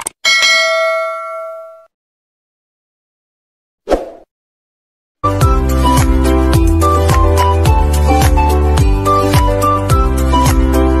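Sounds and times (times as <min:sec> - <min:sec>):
bright bell ding: 0:00.3 - 0:01.9.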